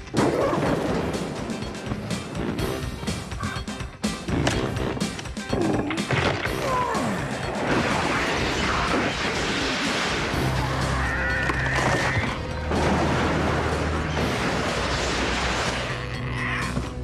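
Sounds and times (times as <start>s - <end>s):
dramatic film score music: 0.0s - 17.0s.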